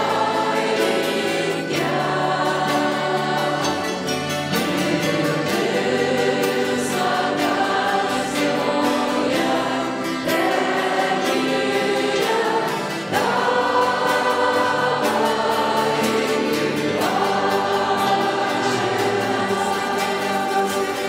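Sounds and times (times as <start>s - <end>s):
choir singing worship song: 0.0s - 21.0s.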